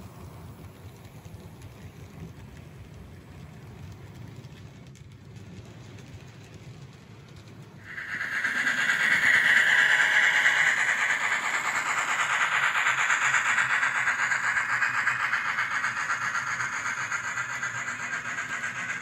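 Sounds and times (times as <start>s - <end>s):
model train cars clattering: 0.1s - 19.0s.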